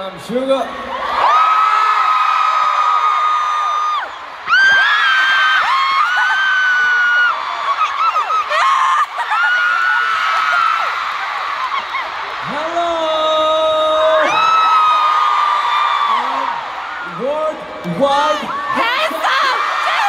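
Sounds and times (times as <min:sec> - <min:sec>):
crowd screaming: 0:00.7 - 0:20.0.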